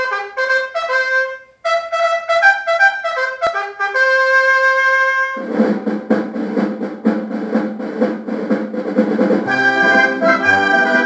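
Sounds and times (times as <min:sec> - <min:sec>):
snare drum roll: 0:05.0 - 0:11.0
held brass chord: 0:09.4 - 0:11.0.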